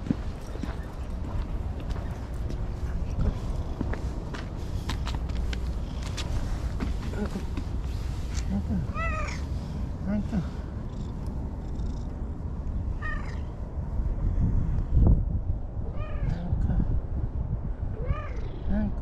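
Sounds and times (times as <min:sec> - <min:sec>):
cat meowing: 0:08.9 - 0:09.4, 0:13.0 - 0:13.5, 0:15.9 - 0:16.4, 0:18.0 - 0:18.7.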